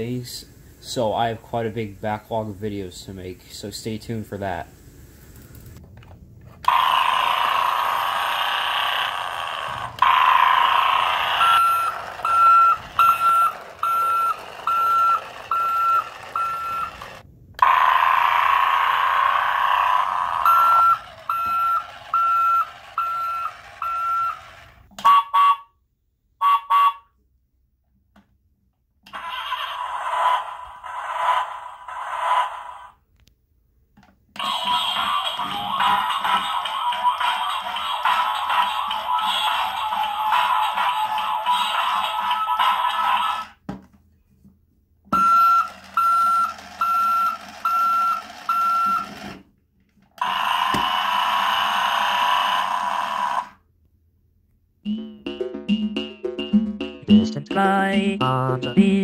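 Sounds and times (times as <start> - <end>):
buzzy toy engine noise: 6.6 - 25.4, 29.1 - 33.1, 34.4 - 43.6, 45.3 - 49.4, 50.1 - 53.7
toy song: 34.4 - 43.6.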